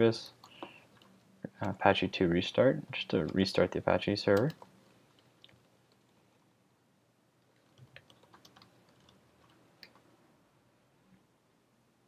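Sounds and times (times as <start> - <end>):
computer keyboard typing: 4.3 - 6.1, 7.6 - 10.1.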